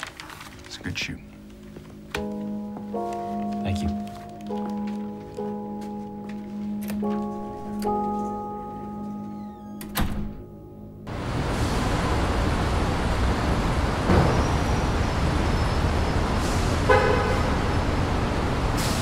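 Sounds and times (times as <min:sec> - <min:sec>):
city traffic noise: 0:11.0 - 0:19.0
car horn toot: 0:16.8 - 0:17.6.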